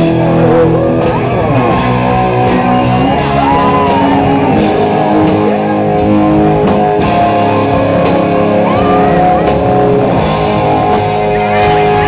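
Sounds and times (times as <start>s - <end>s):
electric guitar bending notes: 0.0s - 12.0s
live rock band playing: 0.0s - 12.0s.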